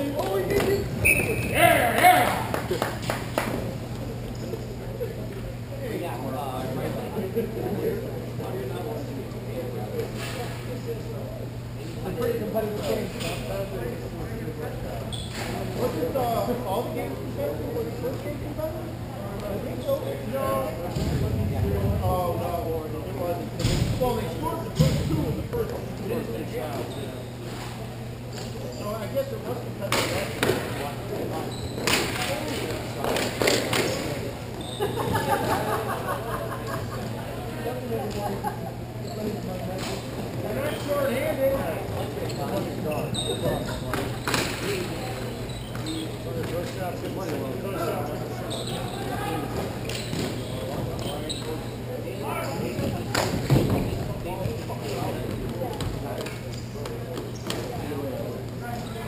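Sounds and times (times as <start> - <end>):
players' voices in arena: 0.0 - 59.0.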